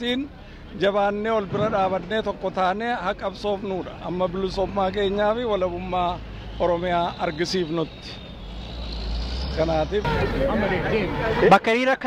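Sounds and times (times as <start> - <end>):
man talking: 0.0 - 8.2
road traffic rumble: 0.0 - 11.8.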